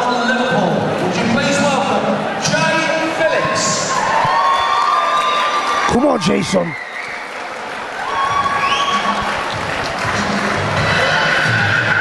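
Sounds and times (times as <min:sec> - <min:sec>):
audience applauding: 0:03.9 - 0:12.0
music with low beat: 0:08.5 - 0:11.7.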